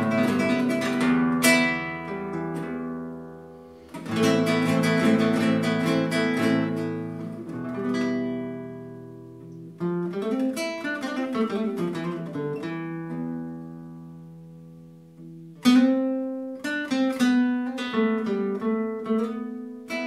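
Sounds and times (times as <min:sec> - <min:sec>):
classical guitar playing: 0:00.0 - 0:20.0.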